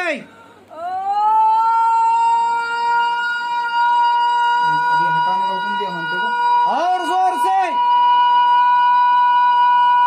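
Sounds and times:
steady high-pitched tone: 0:02.4 - 0:10.0.

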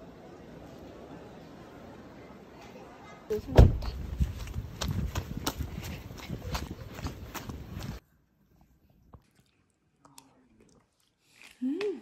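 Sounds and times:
footsteps on wet asphalt: 0:03.6 - 0:08.0.

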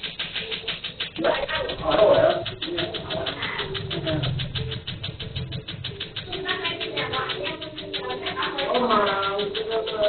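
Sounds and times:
laser firing sharp clicks: 0:00.0 - 0:10.0.

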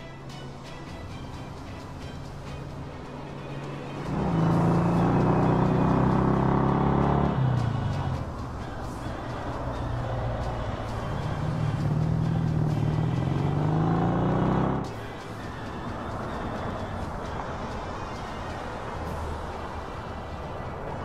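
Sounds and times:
background music: 0:00.0 - 0:21.0
small engine accelerating: 0:03.2 - 0:08.3, 0:09.0 - 0:15.1.

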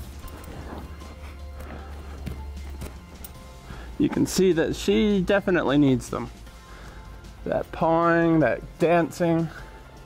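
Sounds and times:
hooves pawing on sand: 0:00.0 - 0:05.0
background music: 0:00.0 - 0:10.0.

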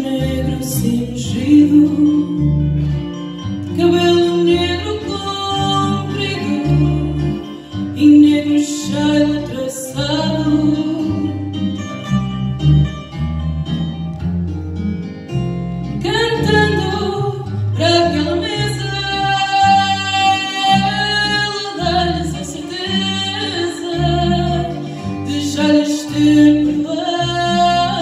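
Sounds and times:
guitars playing: 0:00.0 - 0:28.0
plucked bass line: 0:00.0 - 0:28.0
woman singing long notes: 0:03.7 - 0:11.4, 0:16.0 - 0:28.0.

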